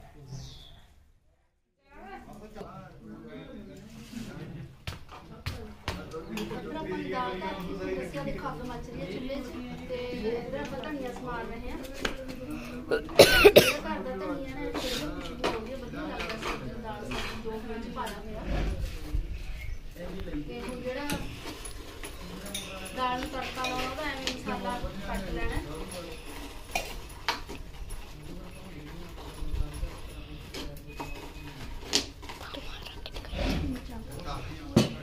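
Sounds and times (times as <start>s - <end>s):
kitchen utensils clinking: 20.7s - 25.1s.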